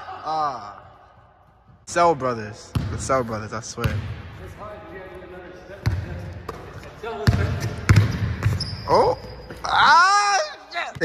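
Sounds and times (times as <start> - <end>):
basketball bouncing on hardwood: 2.7 - 3.1, 3.8 - 4.2.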